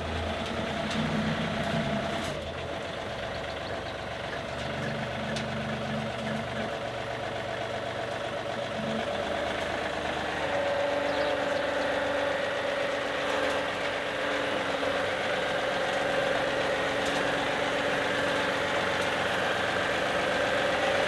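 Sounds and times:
tractor diesel engine running: 0.0s - 21.0s.

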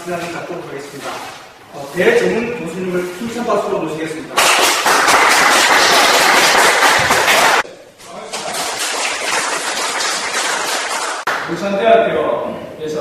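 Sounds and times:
audience applauding: 4.4s - 7.6s, 8.2s - 11.5s.

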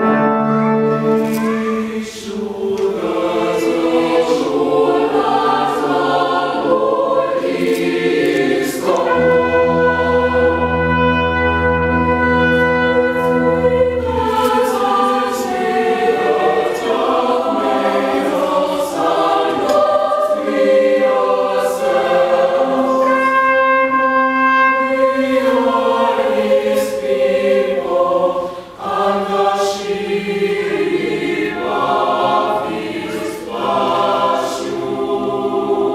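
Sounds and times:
brass and percussion ensemble: 0.0s - 2.0s, 8.0s - 17.7s, 21.8s - 27.2s
mixed choir singing: 0.0s - 35.9s.

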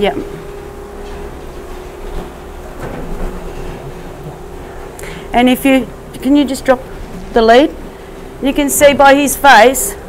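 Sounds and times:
steady mechanical hum: 0.0s - 10.0s.

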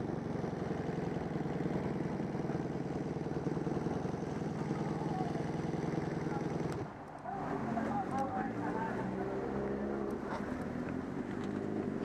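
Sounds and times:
motorcycle engine idling: 0.0s - 6.9s.

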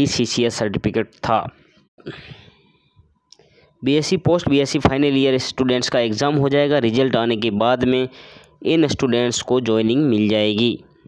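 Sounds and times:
soft breath drawn in: 8.1s - 8.6s.

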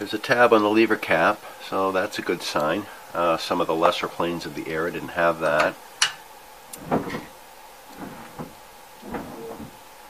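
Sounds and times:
light metal knocks and scrapes: 5.6s - 9.8s.

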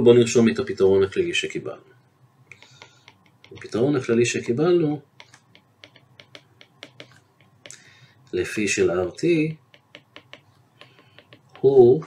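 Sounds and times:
stylus tapping on tablet: 2.5s - 8.0s, 9.5s - 12.0s.

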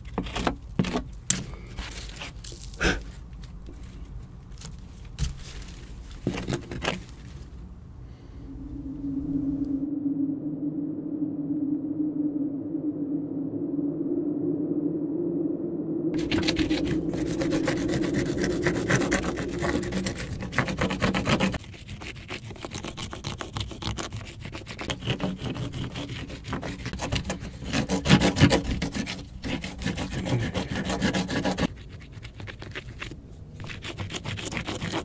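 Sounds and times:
scraping brick wall by hand: 0.0s - 7.6s, 16.2s - 35.0s.

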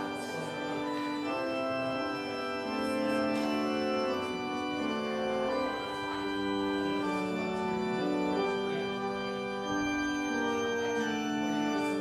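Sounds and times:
church organ playing chords: 0.0s - 12.0s.

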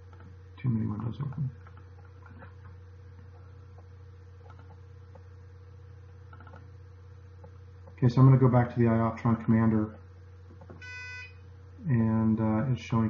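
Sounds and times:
low electrical hum: 0.0s - 13.0s
computer mouse clicks: 3.8s - 4.8s, 6.3s - 6.7s.

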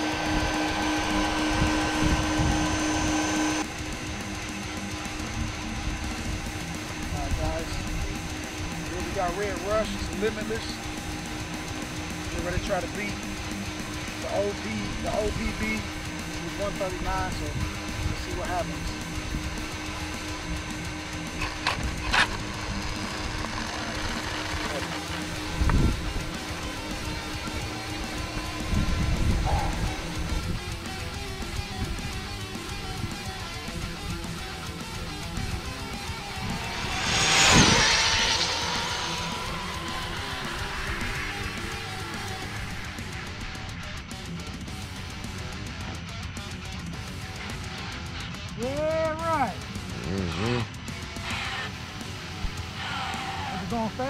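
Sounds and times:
rc car passing with whine: 0.0s - 45.7s, 49.4s - 54.0s
background guitar music: 0.0s - 53.0s.

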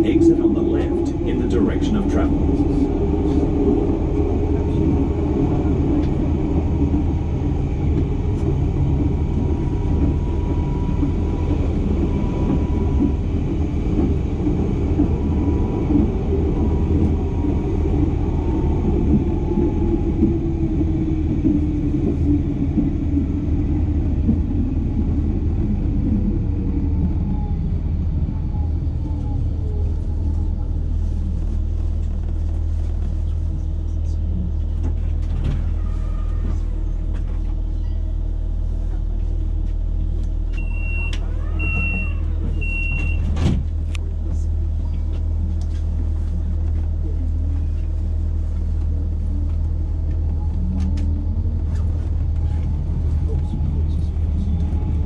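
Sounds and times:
tram motor whine: 0.0s - 33.0s, 33.6s - 55.0s
tram low hum: 0.0s - 55.0s
tram wheels rumbling on rails: 0.0s - 55.0s.

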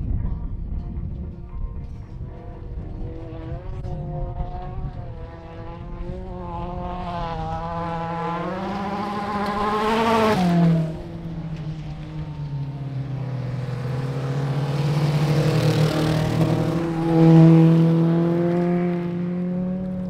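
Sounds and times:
race car engines revving: 1.2s - 20.0s
car passing by: 5.2s - 20.0s.

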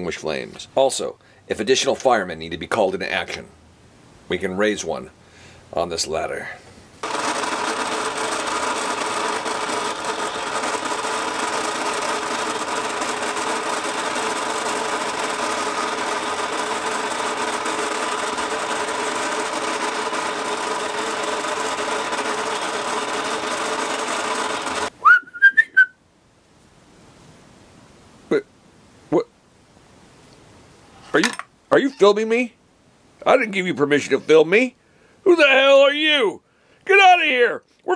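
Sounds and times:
toy motor whirring: 7.0s - 24.9s.

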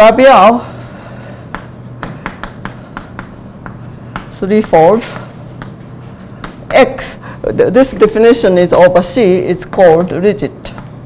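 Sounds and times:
chalk tapping and scraping: 0.4s - 7.2s, 9.3s - 11.0s.

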